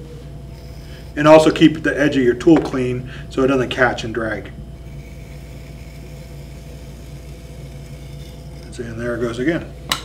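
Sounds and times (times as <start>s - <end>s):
potter's wheel motor humming: 0.0s - 10.0s
metal tool shaving clay: 0.4s - 1.8s, 4.8s - 9.7s.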